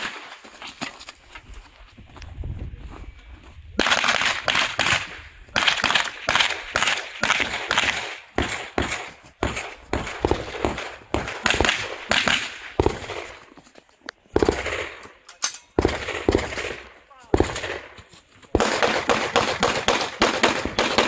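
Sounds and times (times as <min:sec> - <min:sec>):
gunshots: 0:03.8 - 0:13.4, 0:14.4 - 0:15.2, 0:15.8 - 0:21.0.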